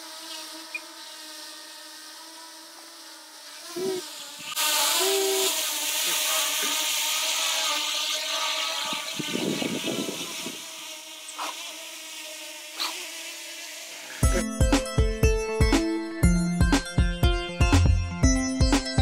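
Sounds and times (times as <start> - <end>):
wind hiss: 8.5 - 11.6
wind buffeting on microphone: 8.9 - 10.6.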